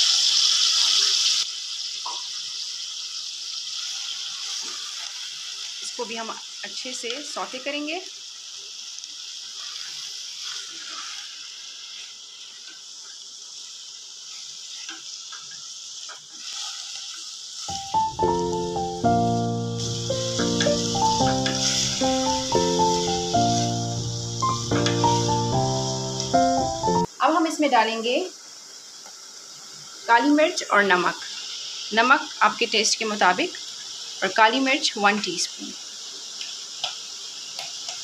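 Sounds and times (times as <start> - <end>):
mushrooms sizzling in butter: 0.0 - 38.0
background music with held notes: 17.7 - 27.1
spatula stirring in saucepan: 19.9 - 23.8.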